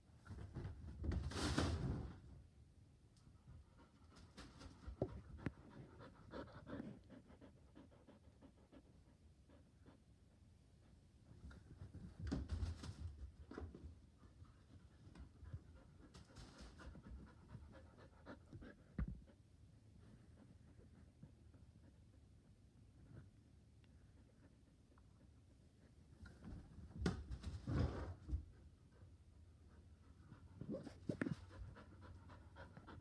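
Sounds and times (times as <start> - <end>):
dog panting: 3.6 - 10.4, 14.2 - 23.2, 28.5 - 33.0.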